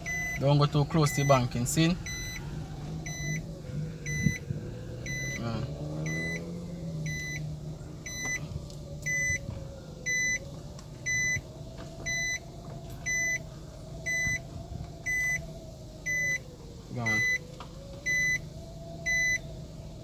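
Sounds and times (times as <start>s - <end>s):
car warning chime beeping: 0.0s - 2.4s, 3.0s - 4.4s, 5.0s - 8.4s, 9.0s - 9.4s, 10.0s - 10.4s, 11.0s - 11.4s, 12.0s - 12.4s, 13.0s - 13.4s, 14.0s - 16.4s, 17.0s - 18.4s, 19.0s - 19.4s
low car engine hum: 0.0s - 20.0s.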